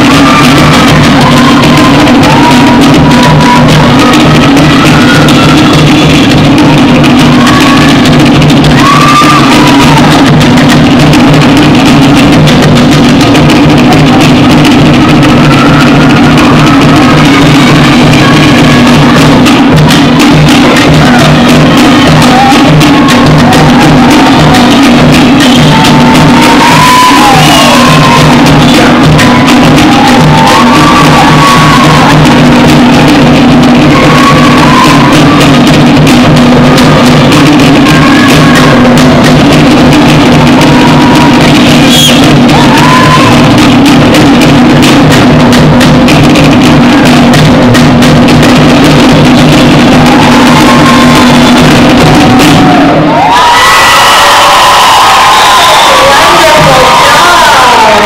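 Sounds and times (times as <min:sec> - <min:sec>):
drum ensemble fast rhythm: 0:00.0 - 0:58.0.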